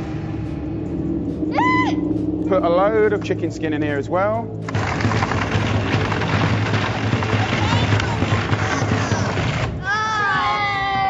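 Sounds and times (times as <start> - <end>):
blender running: 4.7 - 9.8.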